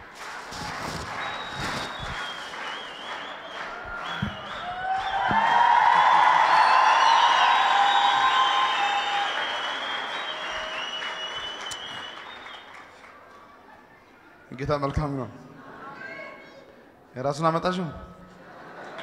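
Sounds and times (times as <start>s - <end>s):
congregation applauding: 0.0s - 13.7s, 18.8s - 19.0s.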